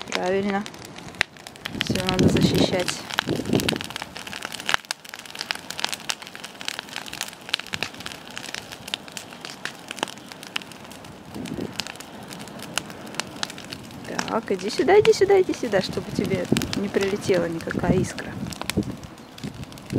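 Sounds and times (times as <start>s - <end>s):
bonfire crackling and popping: 0.0s - 19.9s
fire hissing: 0.0s - 19.9s.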